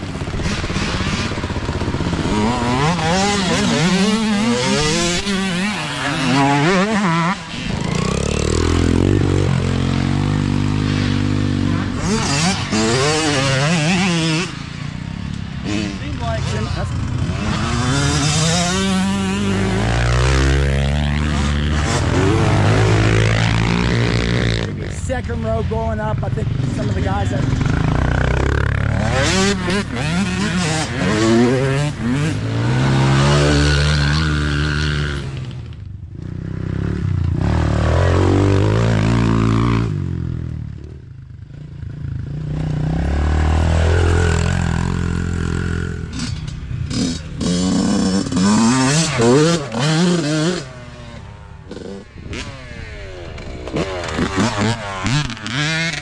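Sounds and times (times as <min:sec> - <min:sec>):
dirt bike engines revving past: 0:00.0 - 0:56.0.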